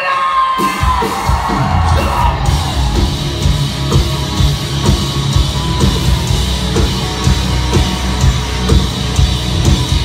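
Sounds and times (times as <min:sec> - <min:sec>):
drums and bass: 0:00.0 - 0:10.0
live rock band playing: 0:00.0 - 0:10.0.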